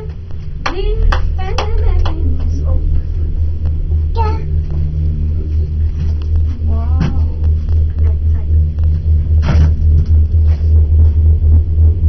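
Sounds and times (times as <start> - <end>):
low pulsing rumble in gondola cabin: 0.0 - 12.0.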